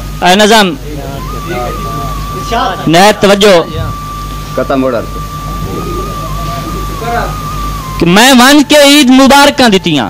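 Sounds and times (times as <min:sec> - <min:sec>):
low steady hum: 0:00.0 - 0:10.0
held high note: 0:01.0 - 0:09.0.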